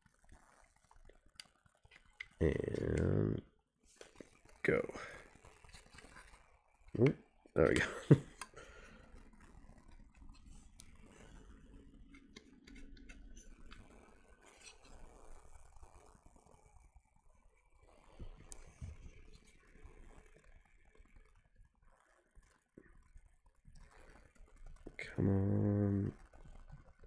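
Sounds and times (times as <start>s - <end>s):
plastic parts clicking and scraping: 5.3s - 7.1s, 7.7s - 15.6s.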